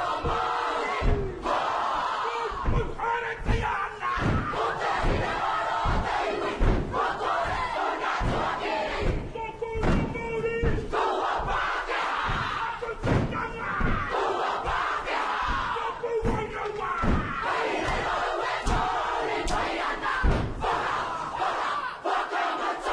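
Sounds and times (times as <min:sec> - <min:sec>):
group chanting and shouting: 0:00.0 - 0:22.9
stamping feet and body slaps: 0:02.5 - 0:21.0.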